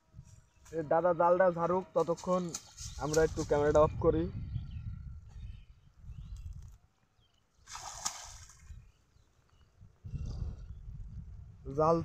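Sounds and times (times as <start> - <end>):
water splash: 7.6 - 8.7.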